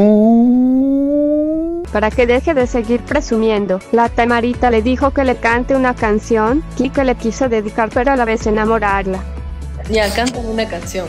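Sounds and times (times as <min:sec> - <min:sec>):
hummed note gliding upward: 0:00.0 - 0:01.9.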